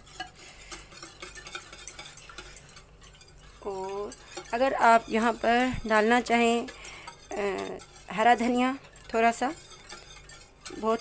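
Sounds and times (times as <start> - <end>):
whisk beating batter in bowl: 0.0 - 11.0.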